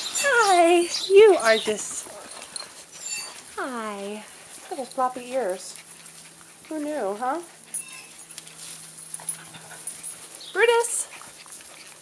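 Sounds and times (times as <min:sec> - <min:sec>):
puppies panting and snuffling: 0:00.0 - 0:12.0.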